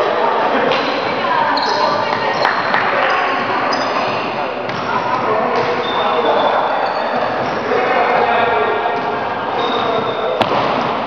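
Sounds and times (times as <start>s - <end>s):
voices echoing in hall: 0.0s - 11.0s
shoes squeaking and thudding: 9.0s - 11.0s.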